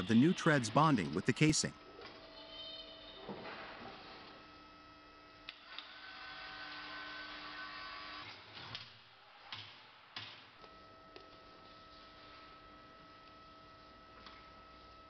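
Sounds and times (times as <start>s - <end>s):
workshop machinery hum: 0.0s - 15.0s.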